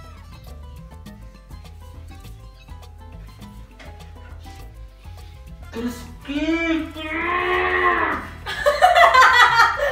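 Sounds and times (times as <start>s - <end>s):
long bellowing call: 7.0s - 8.5s
laughter: 8.4s - 9.9s.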